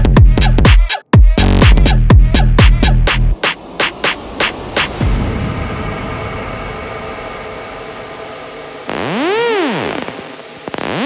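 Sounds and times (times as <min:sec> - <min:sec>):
synthesizer pitch sweep: 0:02.3 - 0:11.0
hiss: 0:03.4 - 0:11.0
sustained synth chord: 0:03.4 - 0:11.0.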